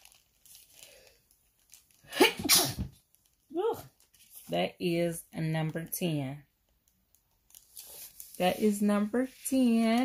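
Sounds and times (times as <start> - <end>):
woman sneezing: 2.1 - 2.9.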